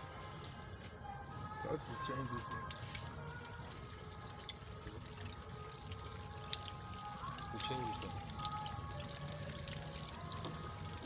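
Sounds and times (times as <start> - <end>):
pond water trickling: 0.0 - 11.0.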